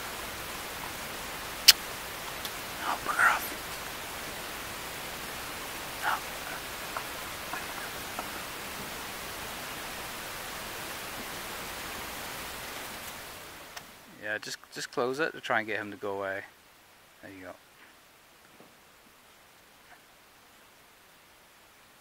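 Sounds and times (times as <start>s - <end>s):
steady hiss: 0.0s - 22.0s.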